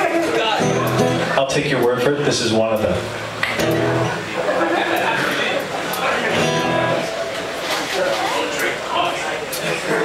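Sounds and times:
acoustic guitar strummed and picked: 0.0s - 1.5s, 2.9s - 8.6s.

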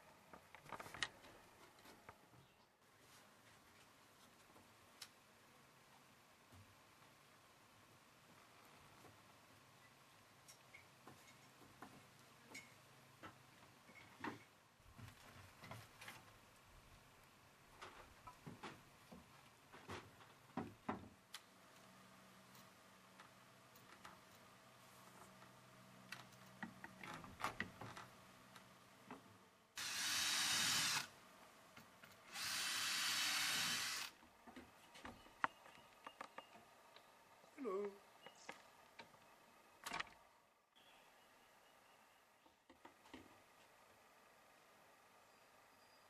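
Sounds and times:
wooden ladder knocks and creaks: 17.8s - 21.2s, 26.2s - 28.2s
power drill driving screws: 29.8s - 31.1s, 32.3s - 34.2s.

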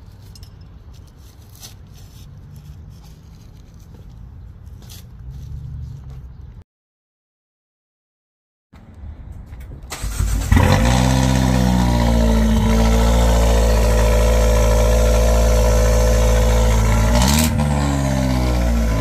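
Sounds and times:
car engine starting and idling: 9.7s - 19.0s.

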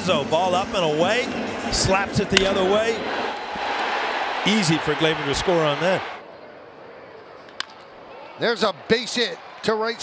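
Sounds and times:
baseball bat hitting ball: 2.3s - 2.6s.

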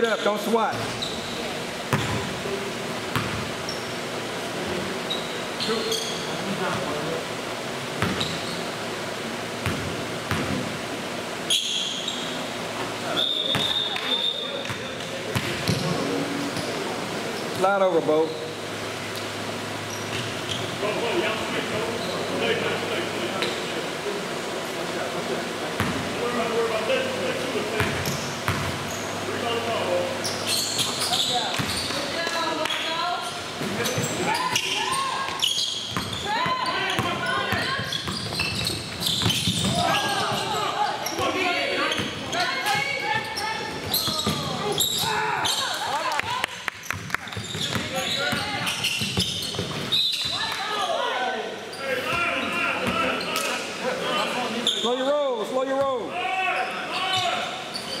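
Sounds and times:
players' voices and shouts: 31.0s - 35.6s, 36.2s - 38.0s, 39.4s - 46.5s, 50.2s - 57.7s.

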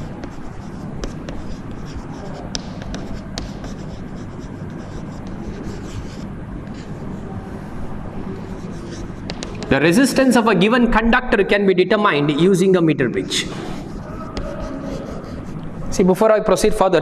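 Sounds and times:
chalk tapping and scratching: 0.0s - 7.2s, 8.4s - 9.8s, 13.5s - 15.7s
low room hum: 0.0s - 17.0s.

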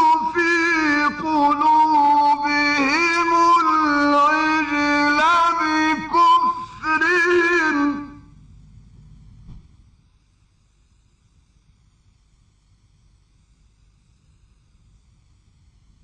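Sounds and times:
man chanting melodically: 0.0s - 8.3s
faint low hum: 0.0s - 16.0s.

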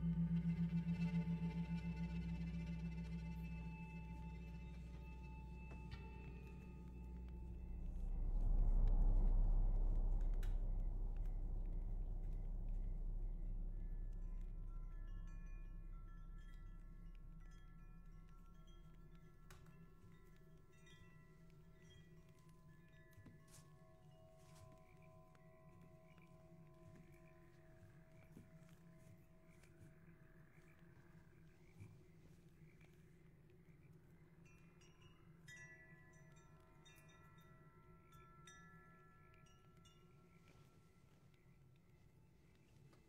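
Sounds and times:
low hum: 0.0s - 22.0s
bell-like ringing tones: 0.0s - 25.2s
wind chimes tinkling: 11.4s - 26.7s, 34.4s - 40.9s.

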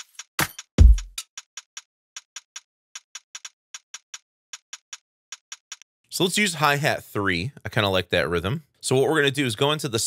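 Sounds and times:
drum machine hi-hat ticks: 0.0s - 5.8s
kick drum: 0.8s - 1.2s.

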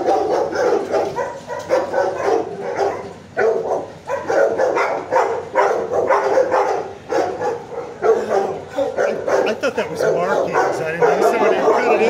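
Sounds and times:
dogs barking: 0.0s - 12.0s.

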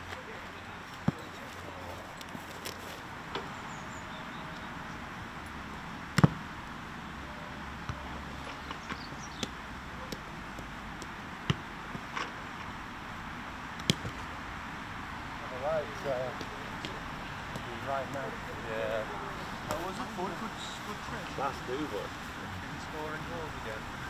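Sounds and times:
steady background hiss: 0.0s - 24.0s
football being kicked: 6.2s - 6.4s.

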